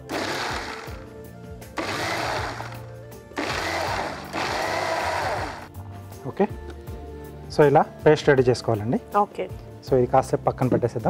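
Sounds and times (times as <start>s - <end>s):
mixer grinder blades churning: 0.0s - 1.1s, 1.8s - 5.7s.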